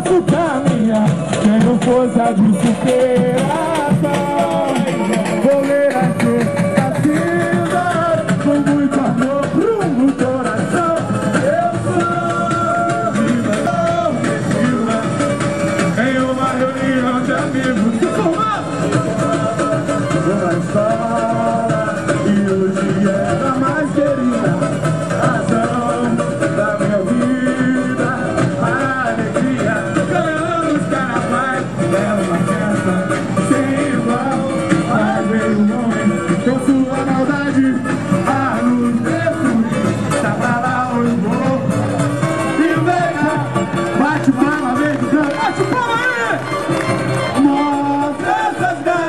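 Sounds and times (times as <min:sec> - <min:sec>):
lead voice singing: 0:00.0 - 0:49.0
plucked strings and percussion: 0:00.0 - 0:49.0
samba drum section: 0:00.0 - 0:49.0.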